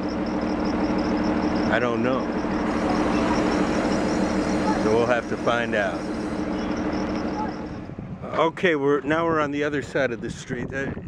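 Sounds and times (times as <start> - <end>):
vehicle engine running: 0.0 - 8.5
road noise: 0.0 - 10.4.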